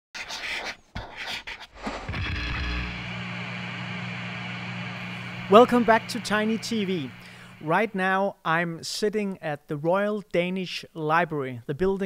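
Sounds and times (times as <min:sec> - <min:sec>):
steady low hum: 0:01.8 - 0:07.9.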